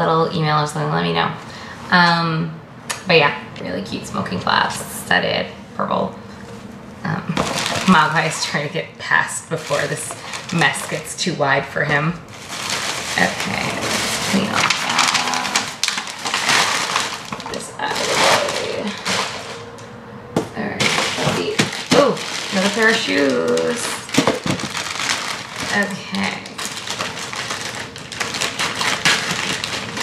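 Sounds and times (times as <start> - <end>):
plastic and paper crinkling: 6.4 - 19.8, 20.7 - 30.0
scissors cutting plastic bag: 12.4 - 19.7, 20.8 - 30.0.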